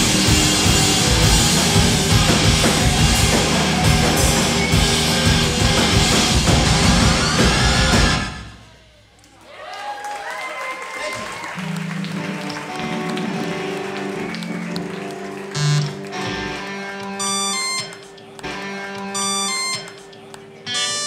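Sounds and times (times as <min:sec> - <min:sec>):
keyboard and electric guitar tones: 0:00.0 - 0:09.4, 0:11.6 - 0:21.0
high electronic beeps: 0:17.2 - 0:18.0, 0:19.1 - 0:20.0.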